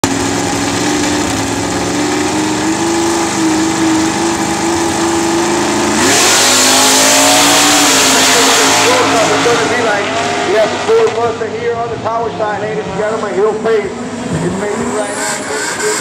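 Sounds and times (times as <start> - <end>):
race car accelerating away: 0.0 - 16.0
race car engines revving: 0.0 - 16.0.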